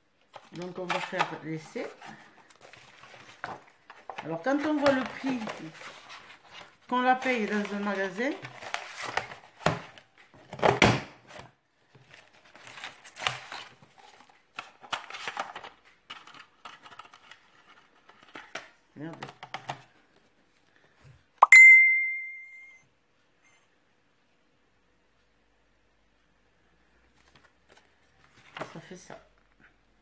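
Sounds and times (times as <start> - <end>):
paper rustling: 0.2 - 10.5, 11.3 - 18.6, 27.1 - 29.0
ringing tone: 21.4 - 22.8.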